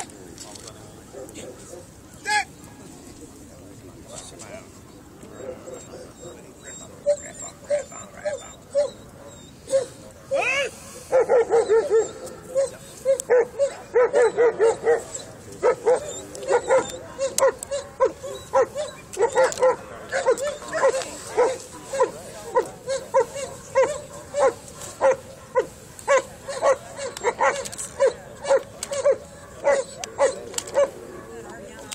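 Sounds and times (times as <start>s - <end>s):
dog barking: 7.2s - 31.6s.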